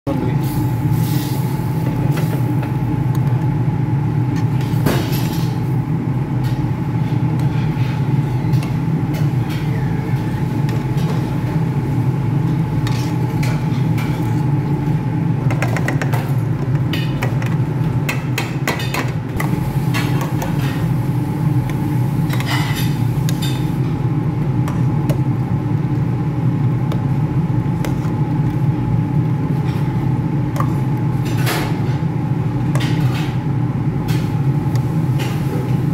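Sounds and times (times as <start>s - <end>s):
kitchen equipment droning: 0.1s - 35.9s
low mechanical hum: 0.1s - 35.9s.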